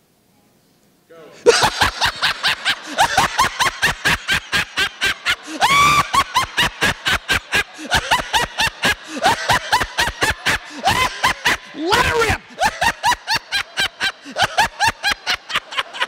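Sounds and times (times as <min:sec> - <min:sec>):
man laughing into a microphone: 0:01.4 - 0:16.0.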